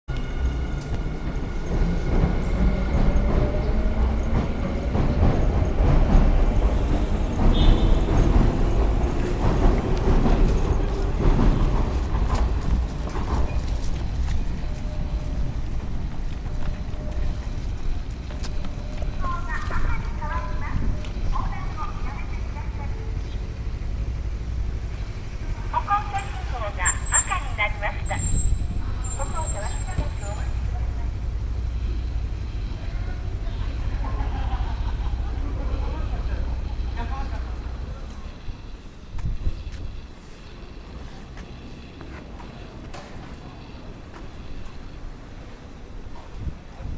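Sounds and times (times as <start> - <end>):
low rumble of traffic: 0.1 - 46.9.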